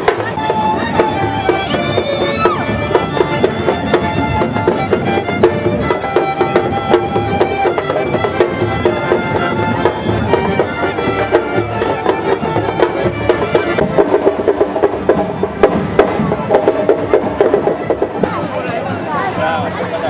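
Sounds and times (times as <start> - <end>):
sharp knocks in a steady beat: 0.0 - 18.8
folk band with fiddles and accordion: 0.0 - 20.0.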